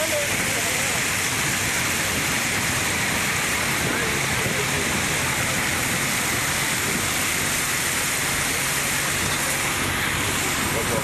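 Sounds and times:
water rushing over a weir: 0.0s - 11.0s.

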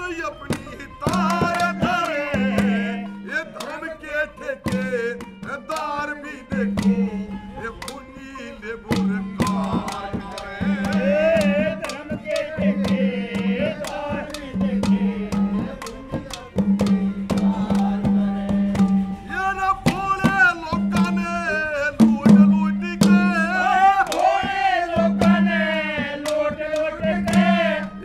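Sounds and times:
man singing wavering melody: 0.0s - 28.0s
hand drum strokes: 8.9s - 27.9s.

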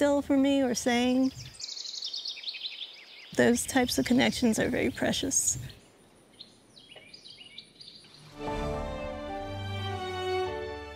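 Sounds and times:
outdoor ambience: 0.0s - 10.9s
songbird chirping: 0.0s - 10.9s.

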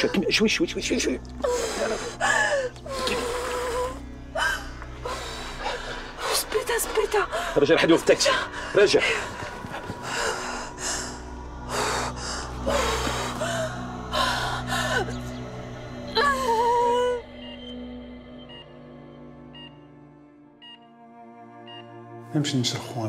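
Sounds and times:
dramatic background music: 0.0s - 23.0s
woman wailing: 16.2s - 17.2s.

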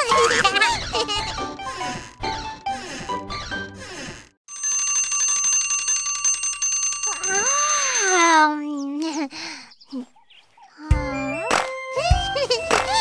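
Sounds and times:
alarm clock bell ringing: 4.5s - 8.5s.

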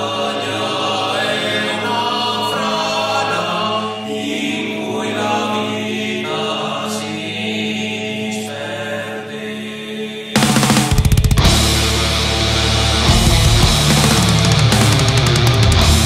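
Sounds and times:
choral voices holding long notes: 0.0s - 10.8s
steady low drone: 11.3s - 16.0s.

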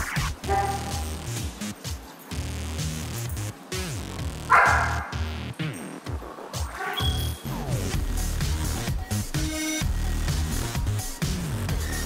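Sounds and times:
background music: 0.0s - 12.0s
dog barking: 0.4s - 1.2s, 4.5s - 5.4s, 6.7s - 7.4s.

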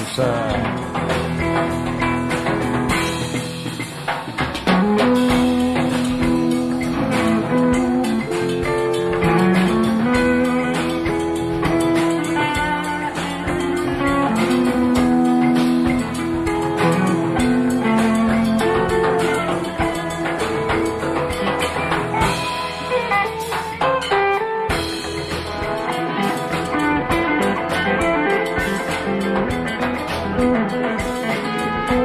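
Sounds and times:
bass and drums: 0.0s - 32.0s
guitar lead with bent notes: 0.0s - 32.0s.

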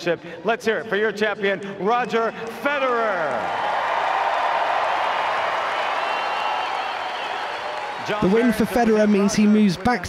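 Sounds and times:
stadium crowd applauding: 1.9s - 10.0s.

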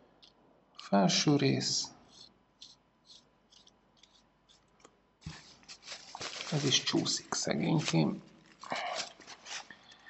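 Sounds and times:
scratchy rasps of metal threads: 2.0s - 4.8s.

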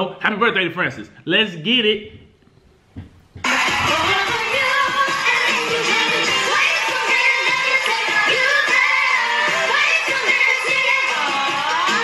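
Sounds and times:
faint low knock: 2.9s - 3.5s
music: 3.4s - 12.0s.

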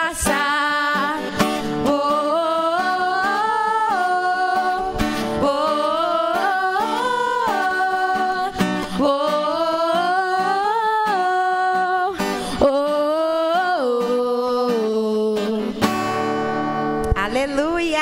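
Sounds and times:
voices singing: 0.0s - 15.9s
acoustic guitar: 0.0s - 18.0s.

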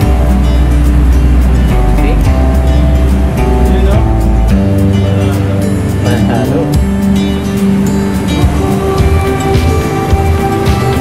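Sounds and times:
background music with heavy bass: 0.0s - 11.0s.

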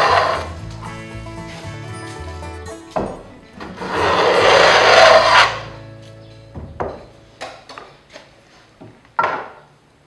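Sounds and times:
hand plane rasping hiss: 3.6s - 5.7s
sharp wooden knocks: 6.6s - 7.9s, 8.8s - 9.7s.

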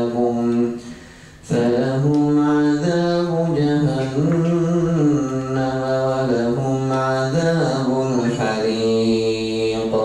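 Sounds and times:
man chanting through a microphone: 0.0s - 10.0s.

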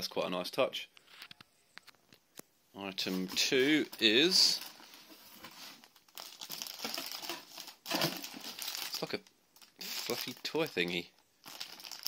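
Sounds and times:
plastic bag crinkling: 2.9s - 12.0s.

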